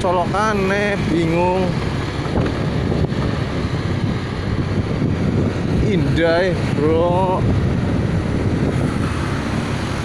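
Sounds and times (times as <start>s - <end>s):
motorcycle engine rumbling: 0.0s - 10.0s
road noise: 0.0s - 10.0s
wind rushing over microphone: 0.0s - 10.0s.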